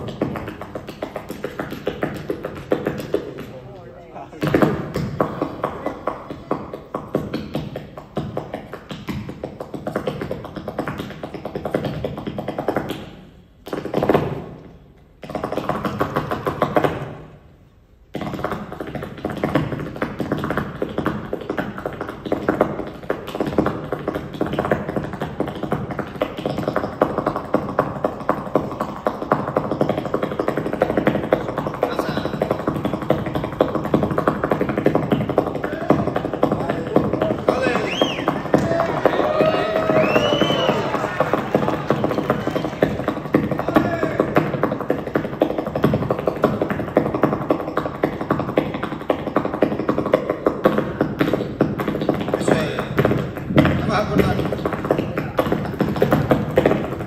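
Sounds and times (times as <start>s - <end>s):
rapid heel and toe strikes on stage: 0.0s - 3.6s, 4.4s - 17.4s, 18.0s - 57.0s.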